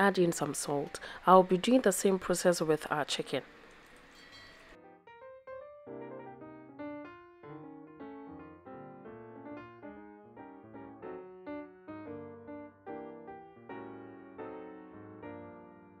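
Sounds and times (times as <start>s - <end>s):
gentle piano music: 0.0s - 16.0s.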